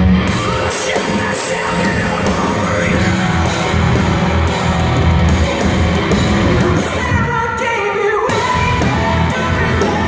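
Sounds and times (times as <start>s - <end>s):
bass and drums: 0.0s - 10.0s
distorted electric guitars: 0.0s - 10.0s
man singing: 0.3s - 3.9s, 6.5s - 10.0s.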